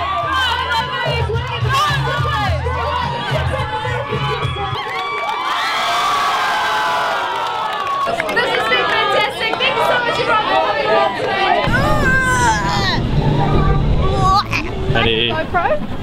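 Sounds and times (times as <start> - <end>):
crowd cheering and shouting: 0.0 - 15.2.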